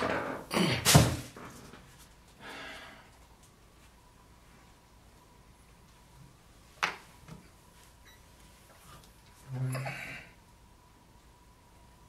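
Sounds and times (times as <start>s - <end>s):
faint steady high tone: 8.0s - 8.3s.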